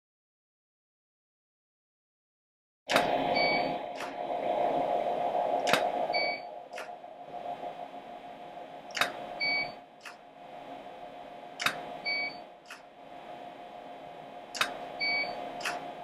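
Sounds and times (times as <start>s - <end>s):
sharp clicks: 2.9s - 3.1s, 4.0s - 4.2s, 5.6s - 5.9s, 6.7s - 6.9s, 8.9s - 9.2s, 10.0s - 10.2s, 11.6s - 11.9s, 14.5s - 14.8s, 15.6s - 15.8s
steady hum: 2.9s - 16.0s.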